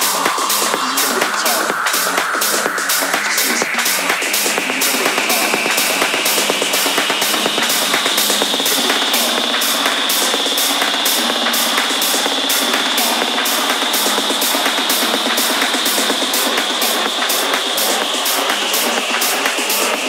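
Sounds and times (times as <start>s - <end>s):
high percussion pattern: 0.0s - 20.0s.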